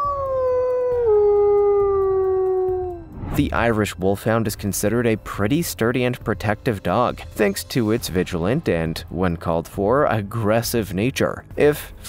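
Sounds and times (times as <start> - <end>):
wolf howling: 0.0 - 3.2.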